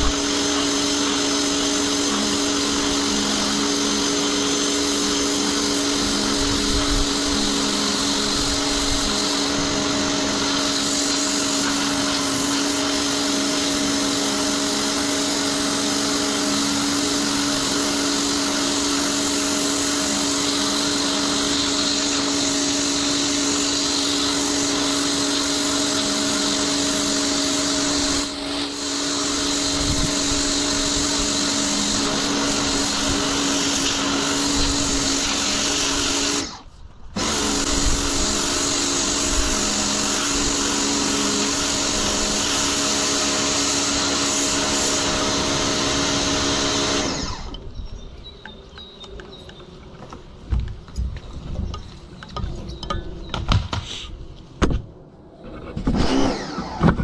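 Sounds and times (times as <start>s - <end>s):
water jet hissing on concrete: 0.0s - 36.4s
pressure washer motor hum: 0.0s - 47.8s.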